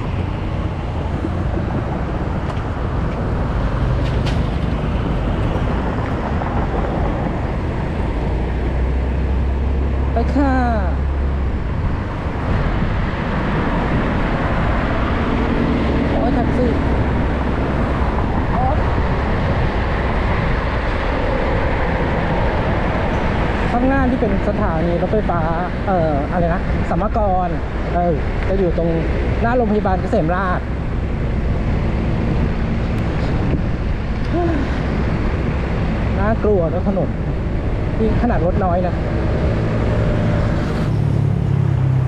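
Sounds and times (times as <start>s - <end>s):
deep rumble: 0.0s - 42.0s
road noise: 0.0s - 42.0s
wind rushing on microphone: 0.0s - 42.0s.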